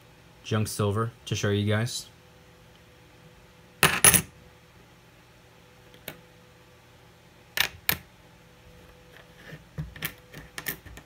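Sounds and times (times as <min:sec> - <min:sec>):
coins clinking: 0:03.8 - 0:04.3.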